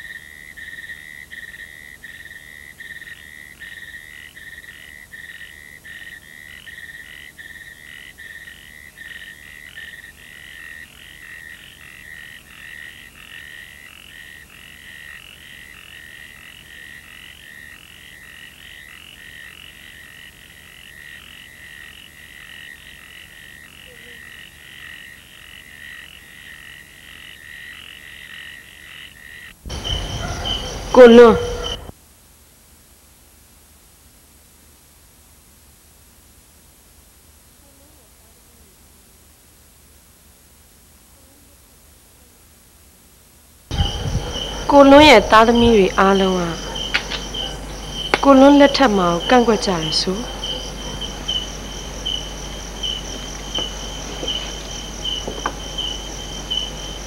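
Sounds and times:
insects and frogs trilling: 0:00.0 - 0:32.0, 0:43.7 - 0:57.0.

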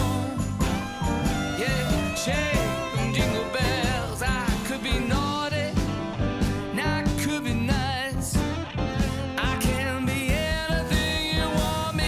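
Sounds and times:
person singing with vibrato: 0:00.0 - 0:05.8, 0:09.4 - 0:12.0
instrumental backing: 0:00.0 - 0:12.0.

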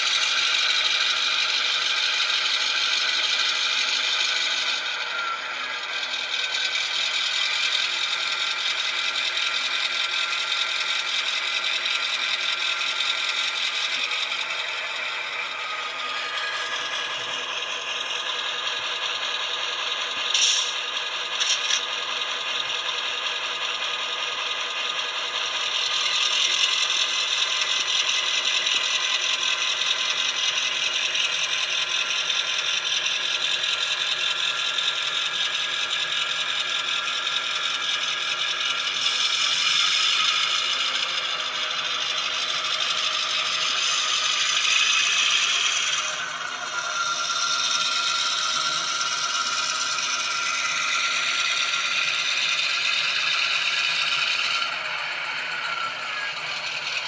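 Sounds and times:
model train diesel engine sound: 0:00.0 - 0:57.0.

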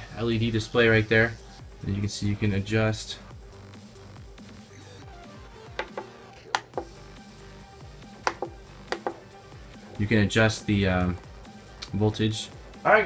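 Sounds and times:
quiet electronic music: 0:00.0 - 0:13.0.

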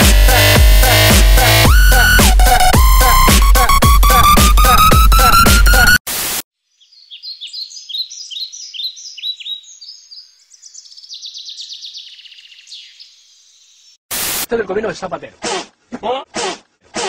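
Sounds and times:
tv static burst: 0:03.6 - 0:06.4, 0:14.1 - 0:14.5
birds chirping and singing: 0:06.7 - 0:14.0.

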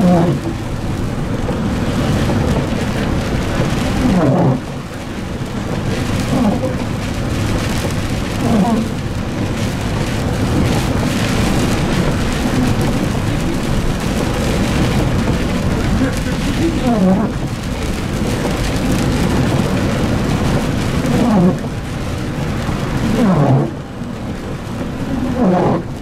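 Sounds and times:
bus engine and road noise: 0:00.0 - 0:26.0
windscreen wiper sweeping: 0:00.0 - 0:26.0.

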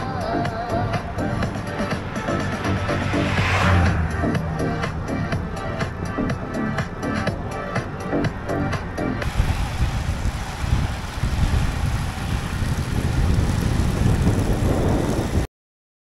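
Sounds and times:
electronic dance music: 0:00.0 - 0:09.4
road noise: 0:00.0 - 0:15.5
wind buffeting microphone: 0:09.2 - 0:15.5.

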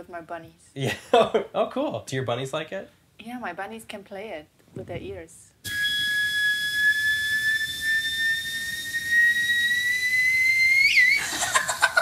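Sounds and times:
theremin tone: 0:05.6 - 0:11.2
woman laughing: 0:11.2 - 0:12.0.

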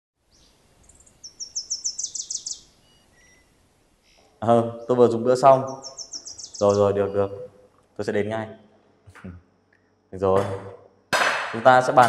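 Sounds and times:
small bird chirping: 0:00.2 - 0:09.9.

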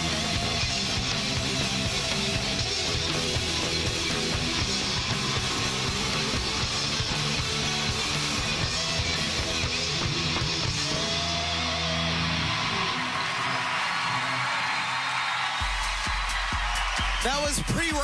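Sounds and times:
heavy metal band playing: 0:00.0 - 0:13.1
bass guitar: 0:00.0 - 0:13.2
distorted electric guitars: 0:00.0 - 0:14.4
drums: 0:00.0 - 0:18.0.

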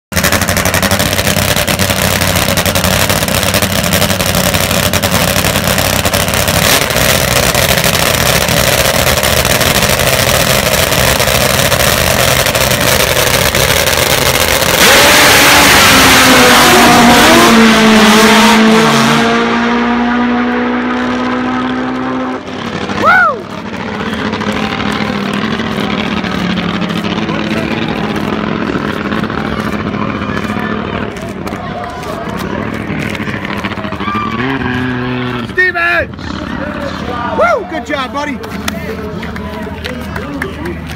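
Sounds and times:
drag motorcycles launching: 0:00.1 - 0:40.9.

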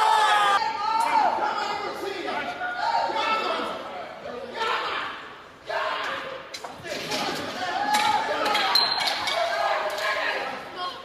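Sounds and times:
people shouting: 0:00.0 - 0:03.8.

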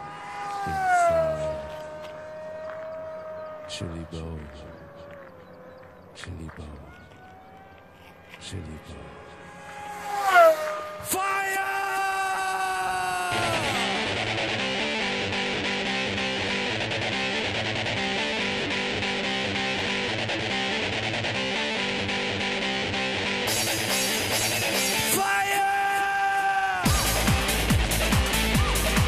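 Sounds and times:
loud music with steady beat: 0:26.9 - 0:29.0.

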